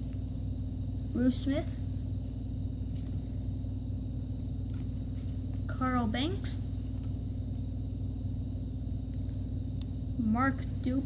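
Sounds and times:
low pitched hum: 0.0 - 11.0.

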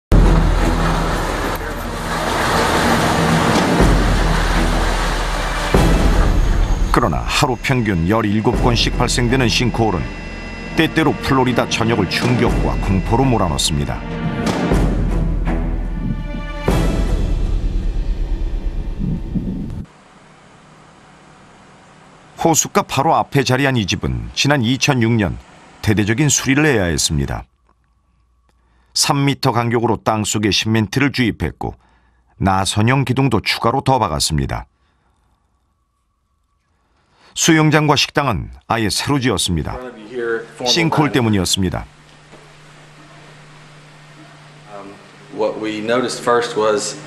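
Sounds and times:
loud crash: 0.1 - 9.4
building collapsing rumble: 0.1 - 10.6, 15.8 - 19.9
steady engine hum: 0.1 - 27.2, 39.8 - 47.0
faint outdoor ambience hiss: 19.0 - 47.0.

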